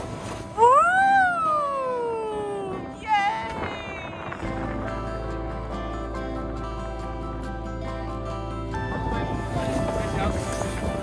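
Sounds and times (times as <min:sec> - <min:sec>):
background music with steady bass: 0:00.0 - 0:11.0.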